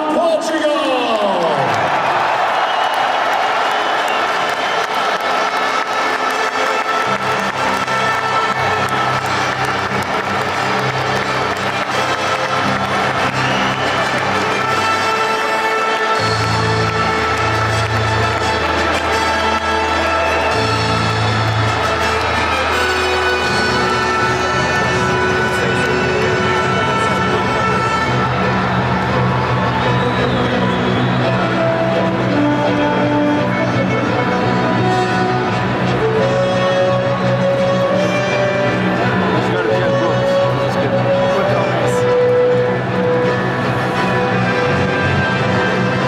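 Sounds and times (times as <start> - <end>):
crowd cheering and applauding: 0.0 - 46.0
music over public-address system: 4.7 - 46.0.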